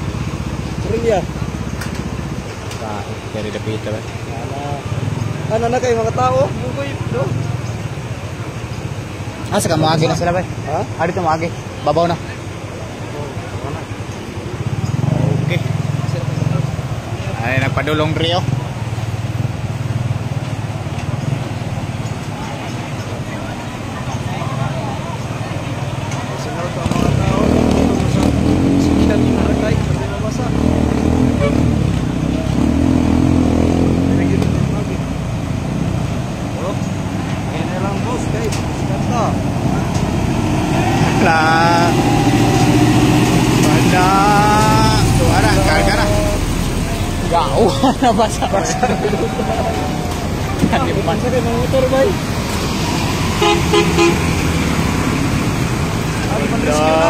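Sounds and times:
moving water: 0:00.0 - 0:57.0
truck engines running: 0:00.0 - 0:57.0
truck wheel splashing water: 0:35.2 - 0:56.6
people calling out: 0:40.5 - 0:54.4.

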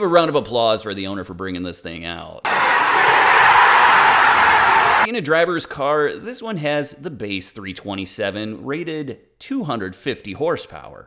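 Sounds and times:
indoor crowd cheering and shouting: 0:02.4 - 0:05.1.

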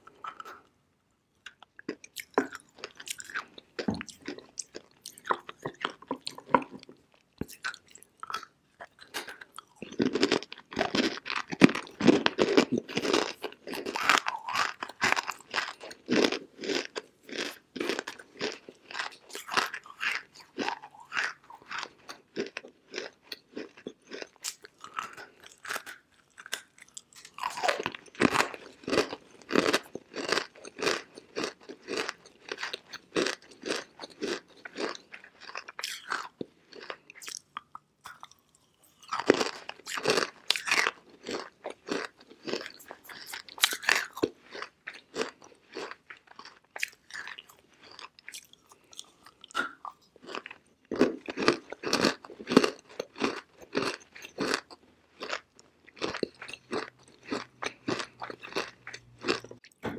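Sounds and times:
crunchy chewing: 0:01.4 - 0:59.9.

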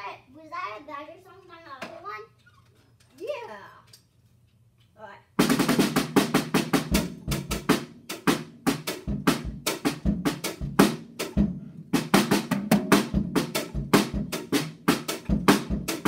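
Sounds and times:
fast snare and tom strokes: 0:05.4 - 0:16.0
bass drum kicks: 0:06.8 - 0:07.8.

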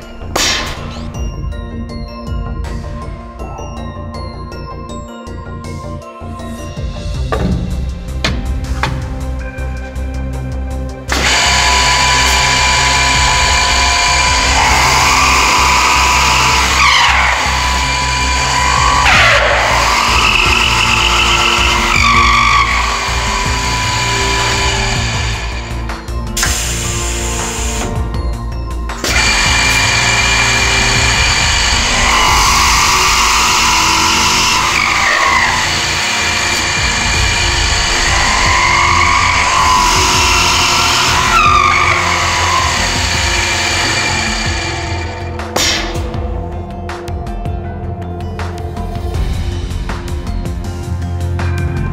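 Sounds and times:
background music: 0:00.0 - 0:51.9
drills whining into wood: 0:11.1 - 0:28.0, 0:28.9 - 0:46.1.

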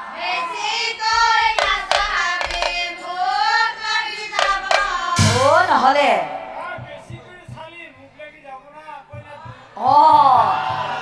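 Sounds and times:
sharp percussive strikes: 0:01.5 - 0:03.0, 0:04.3 - 0:07.7
loud percussion crash: 0:04.4 - 0:07.3.

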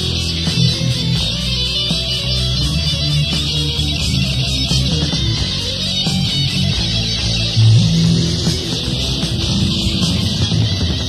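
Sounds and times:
bass guitar: 0:00.0 - 0:11.0
electric guitar: 0:00.0 - 0:11.0.

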